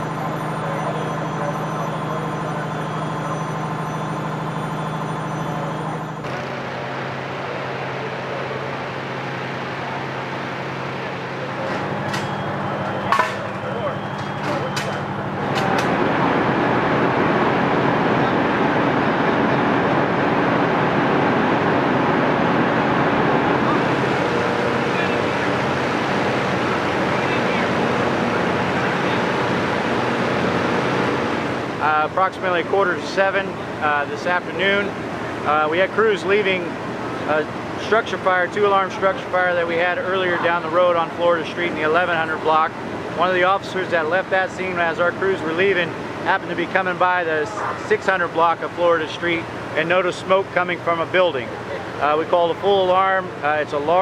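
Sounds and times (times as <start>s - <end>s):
engine droning: 0.0s - 54.0s
ventilation fan air rushing: 0.0s - 54.0s.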